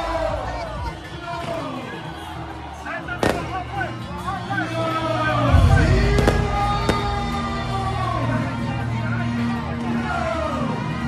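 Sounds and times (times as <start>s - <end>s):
crowd noise: 0.0s - 11.0s
deep boom: 5.5s - 7.9s.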